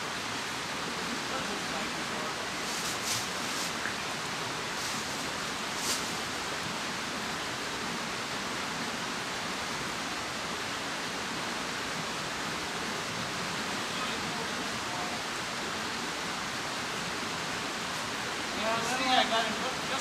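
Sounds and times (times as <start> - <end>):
stream rushing over rocks: 0.0 - 20.0.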